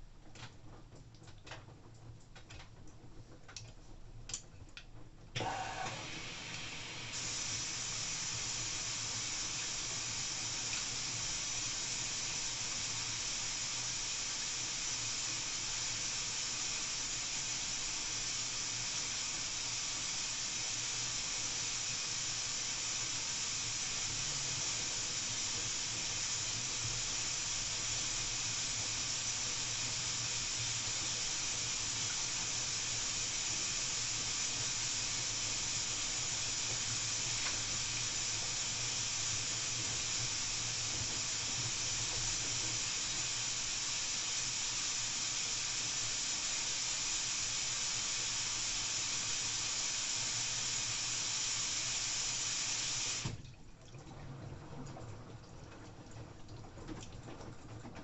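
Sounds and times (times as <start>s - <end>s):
washing machine hum: 0.0s - 58.0s
water filling hiss: 5.4s - 53.4s.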